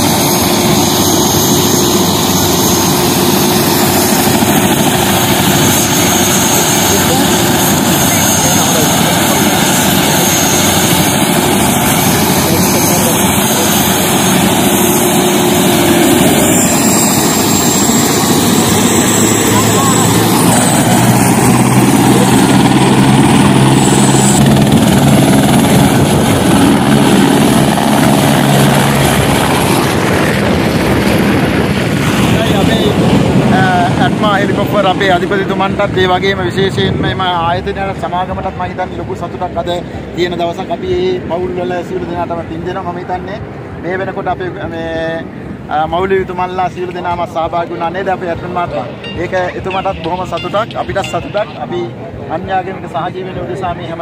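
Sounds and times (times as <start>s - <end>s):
high whine: 0.0s - 39.8s
helicopter engine and rotor: 0.0s - 54.0s.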